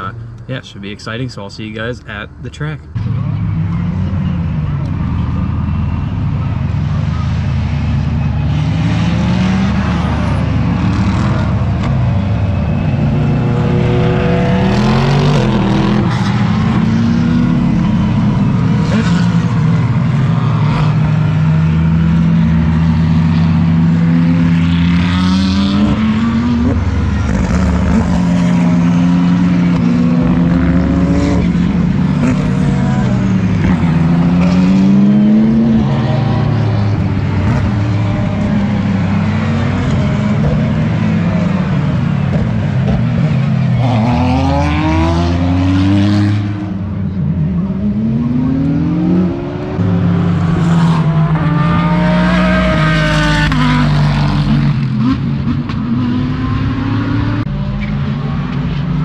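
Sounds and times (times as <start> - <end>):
race cars passing at speed: 2.9 - 59.0.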